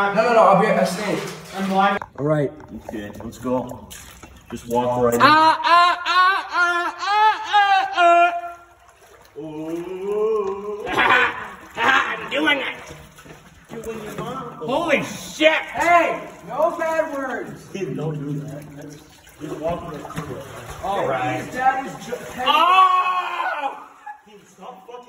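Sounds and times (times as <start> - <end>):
children yelling drawn-out cries: 22.5 - 24.0.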